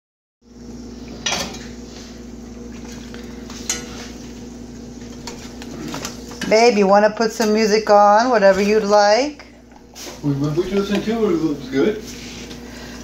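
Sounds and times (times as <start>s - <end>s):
steady hum: 0.4s - 13.0s
eggs sizzling in a skillet: 3.2s - 6.5s.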